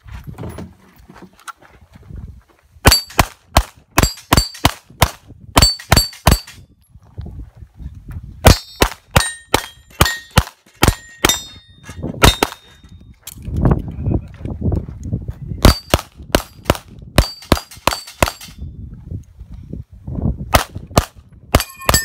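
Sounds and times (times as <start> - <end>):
pistol shots: 8.4 - 11.5
steel targets ringing: 8.5 - 12.8, 21.6 - 22.0.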